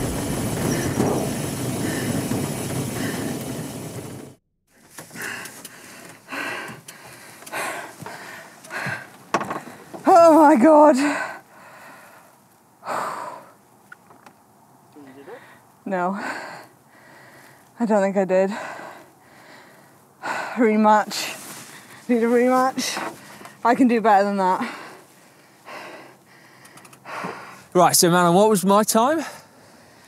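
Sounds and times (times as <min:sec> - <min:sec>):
cyclist breathing hard: 0:00.5 - 0:03.9, 0:04.8 - 0:10.1, 0:10.9 - 0:13.6, 0:15.0 - 0:17.8, 0:18.4 - 0:23.6, 0:24.4 - 0:27.7, 0:29.2 - 0:30.0.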